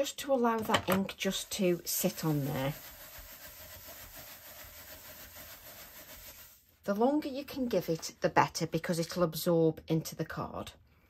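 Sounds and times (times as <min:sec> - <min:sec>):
paper towel rubbing on card: 0:01.2 - 0:06.8.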